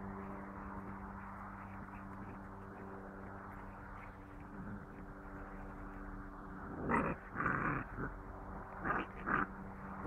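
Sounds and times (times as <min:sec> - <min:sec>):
puppies growling: 0:06.6 - 0:10.0.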